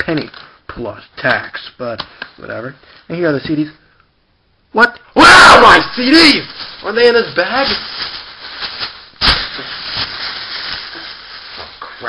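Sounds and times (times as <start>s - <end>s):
sharp loud crackle: 5.3s - 11.8s
packing bag rustling: 5.6s - 12.0s.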